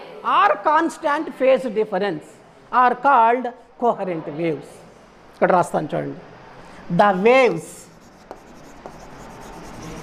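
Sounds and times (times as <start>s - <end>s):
chalk scratching on chalkboard: 7.0s - 10.0s
light chalk taps: 8.0s - 10.0s.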